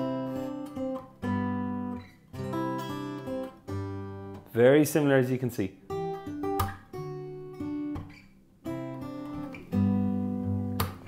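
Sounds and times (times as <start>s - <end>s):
finger-picked acoustic guitar: 0.0s - 5.0s, 5.8s - 11.0s.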